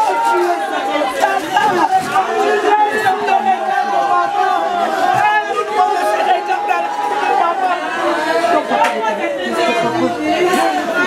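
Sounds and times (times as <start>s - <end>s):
mourners' voices: 0.0s - 11.0s.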